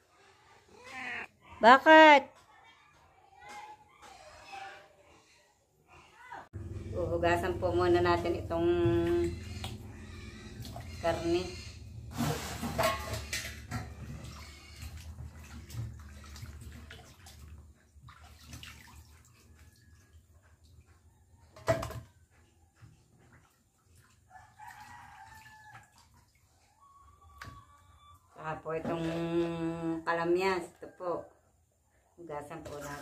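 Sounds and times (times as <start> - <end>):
woman's voice: 1.1 - 2.4, 6.9 - 9.5, 11.0 - 11.7, 28.4 - 31.3, 32.2 - 33.0
water splashing and rubbing: 7.9 - 21.2, 22.4 - 26.9.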